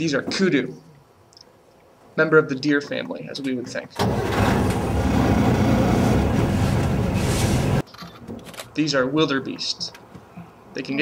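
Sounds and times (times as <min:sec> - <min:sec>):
vehicle engine and road noise: 0:04.0 - 0:08.6.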